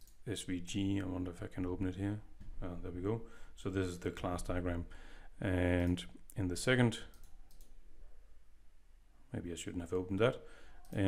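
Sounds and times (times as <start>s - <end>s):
computer mouse clicks: 7.1s - 7.8s.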